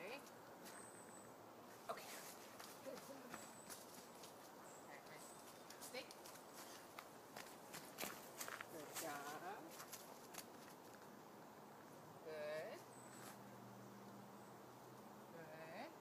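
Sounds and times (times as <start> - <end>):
footsteps on leafy dirt trail: 1.9 - 11.1.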